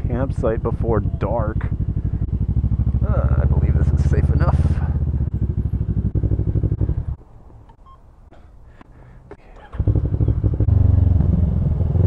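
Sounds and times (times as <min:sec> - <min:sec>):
motorcycle engine idling: 0:00.0 - 0:07.2, 0:09.6 - 0:11.2.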